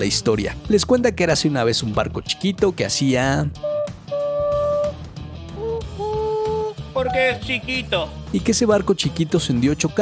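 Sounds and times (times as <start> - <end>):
background music: 0.0 - 10.0
voice imitating boat horn: 3.6 - 5.0, 5.6 - 6.8.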